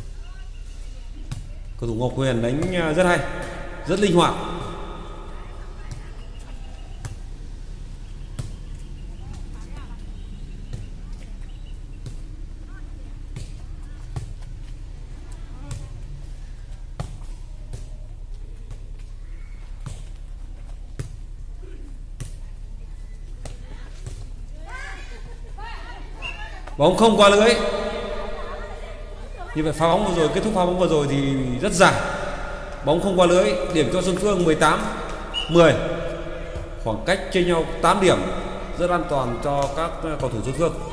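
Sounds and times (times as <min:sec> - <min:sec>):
man's voice: 0:01.8 - 0:04.9, 0:26.8 - 0:28.3, 0:29.6 - 0:40.9
faint chatter: 0:04.6 - 0:19.8, 0:27.8 - 0:29.7.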